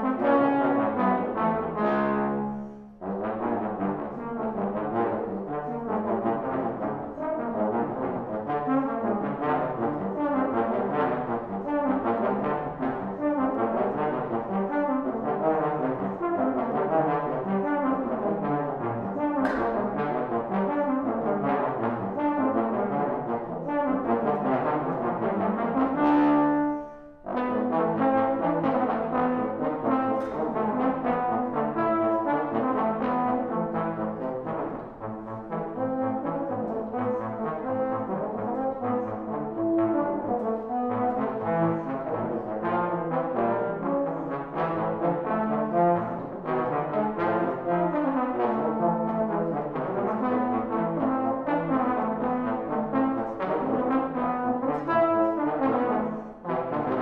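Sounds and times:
trombones playing duet: 0:00.0 - 0:57.0.

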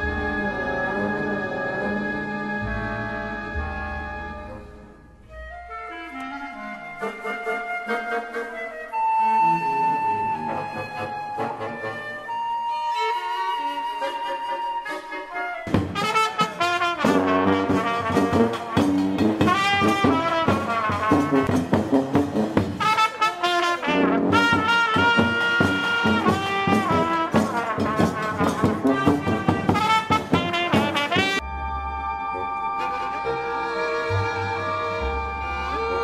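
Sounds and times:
lively brass music: 0:05.8 - 0:36.0.

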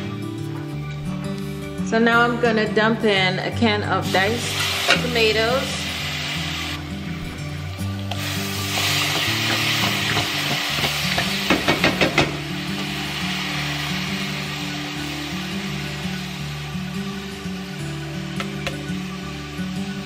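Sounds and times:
tomatoes sizzling in a pot: 0:03.3 - 0:20.0.

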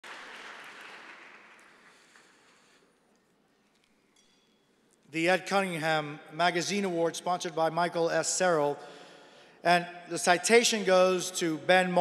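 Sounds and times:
audience applause: 0:00.0 - 0:02.6.

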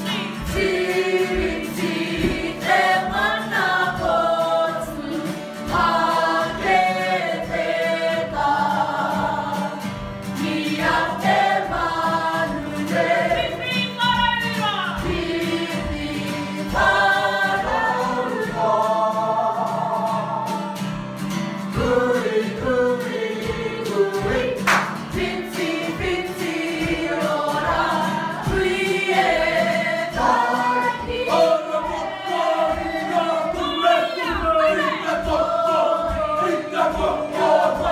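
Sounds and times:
group of voices singing: 0:00.0 - 0:37.9
steady beat: 0:24.3 - 0:37.9.

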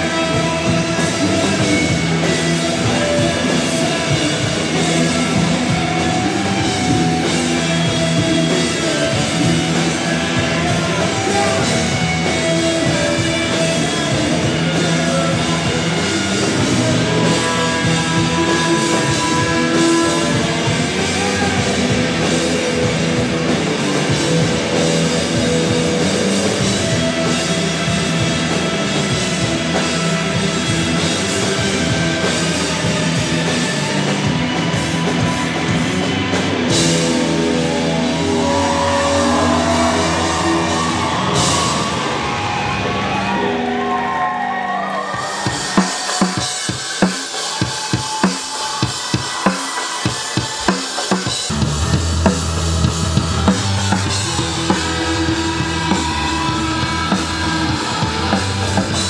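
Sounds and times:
bass guitar: 0:00.0 - 0:46.4, 0:51.3 - 0:59.0
rock band playing: 0:00.0 - 0:59.0.

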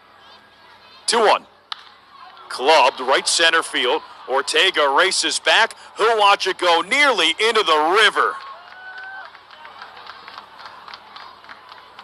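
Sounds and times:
faint crowd chatter: 0:00.0 - 0:12.0
scattered clapping: 0:08.3 - 0:12.0.

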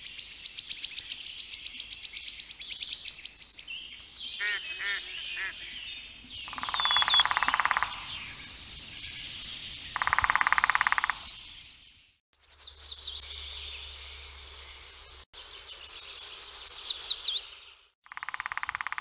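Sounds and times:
woodland birdsong: 0:00.0 - 0:19.0.

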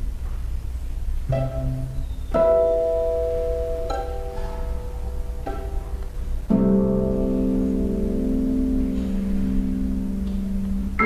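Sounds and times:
chamber ensemble music: 0:01.3 - 0:07.8
sustained low string chord: 0:01.3 - 0:11.0.

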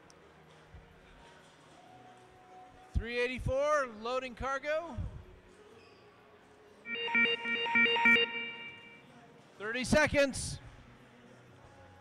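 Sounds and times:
pulsing electronic alarm: 0:06.9 - 0:09.0.

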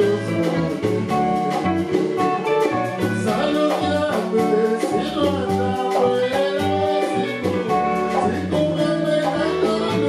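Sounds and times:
men singing: 0:00.0 - 0:01.8, 0:03.0 - 0:10.0
congas: 0:00.0 - 0:10.0
live band playing: 0:00.0 - 0:10.0.

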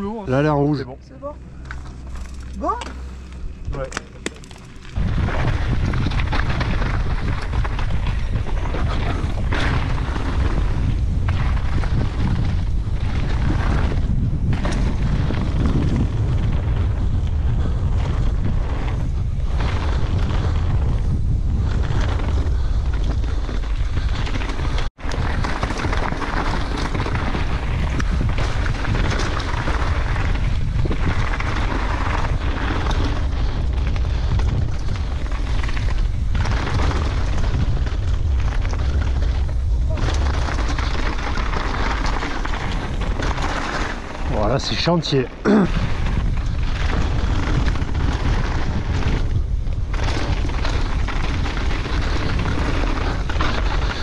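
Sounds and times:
wind rumbling on microphone: 0:00.0 - 0:54.0
bike tyres on rough trail: 0:01.4 - 0:54.0.

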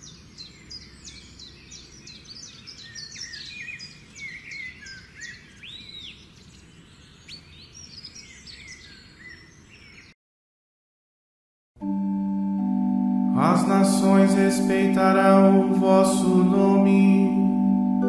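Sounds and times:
birds chirping and singing: 0:00.0 - 0:10.2, 0:13.3 - 0:18.0.

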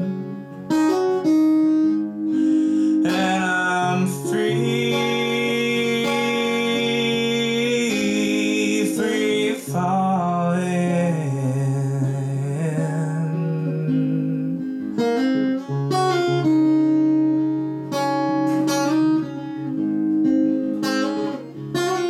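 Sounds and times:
strummed acoustic guitar: 0:00.0 - 0:22.0
man singing: 0:02.7 - 0:14.8.

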